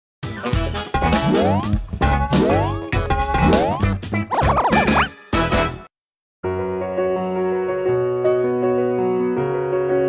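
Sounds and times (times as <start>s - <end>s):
playful jingle music: 0.3s - 5.8s.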